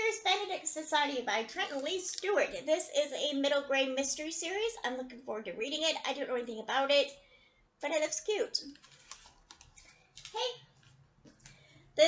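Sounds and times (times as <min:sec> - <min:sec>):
books being handled: 0:08.7 - 0:11.6.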